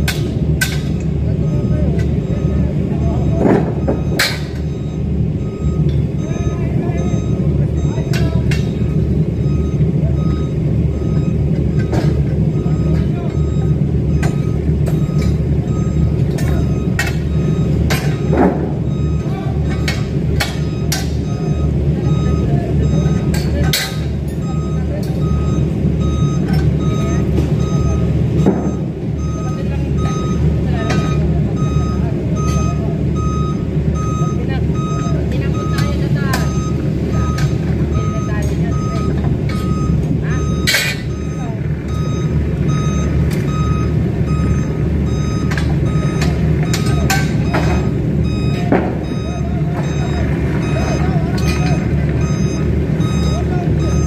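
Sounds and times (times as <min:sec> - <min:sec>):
engine rumble: 0:00.0 - 0:54.0
reversing alarm beeping: 0:00.0 - 0:54.0.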